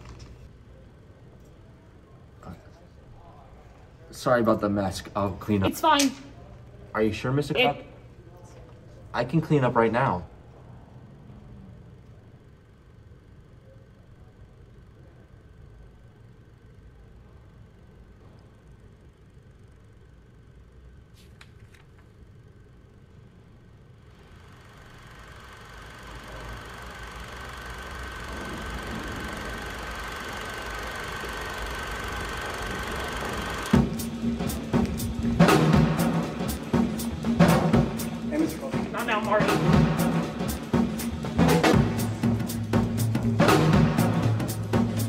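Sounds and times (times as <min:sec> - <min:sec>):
faint steady hum: 0:00.0 - 0:45.0
noisy drone: 0:23.4 - 0:45.0.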